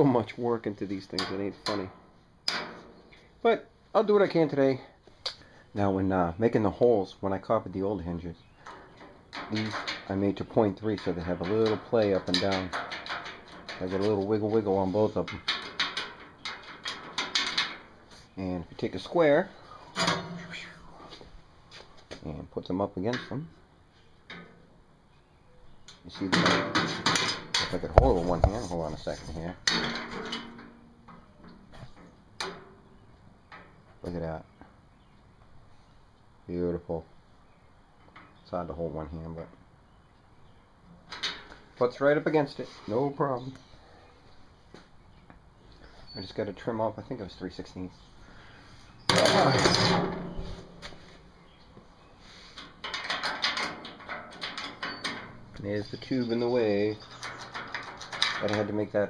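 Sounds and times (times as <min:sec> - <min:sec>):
metal hinge clicking and rattling: 0:01.1 - 0:03.2, 0:08.6 - 0:18.0, 0:19.9 - 0:20.6, 0:25.8 - 0:33.8, 0:41.1 - 0:41.6, 0:49.0 - 0:51.6, 0:52.6 - 0:59.0.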